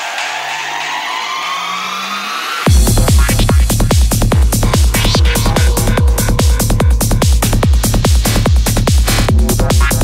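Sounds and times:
high synth lines: 0.0s - 8.0s
rising noise sweep: 0.0s - 8.0s
sustained synth pads: 0.0s - 10.0s
low synth note: 1.4s - 8.3s.

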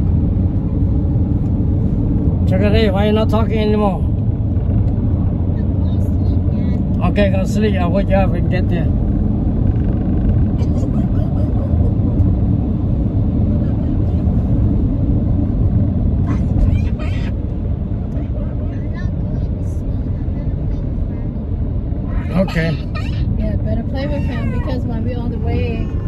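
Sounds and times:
road rumble inside car: 0.0s - 26.0s.

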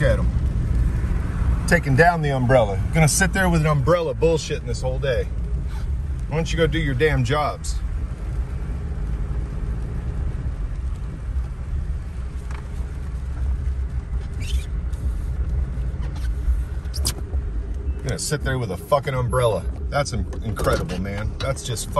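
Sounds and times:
car cabin low rumble: 0.0s - 21.9s.

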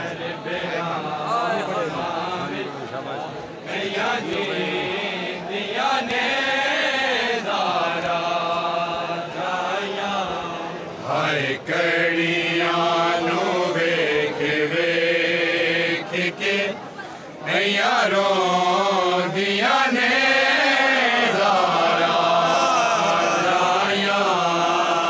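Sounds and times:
men chanting a lament: 0.0s - 16.8s, 17.4s - 25.0s.

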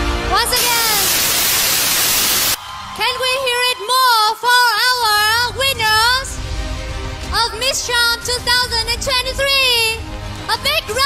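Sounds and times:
loud static hiss: 0.6s - 2.6s.

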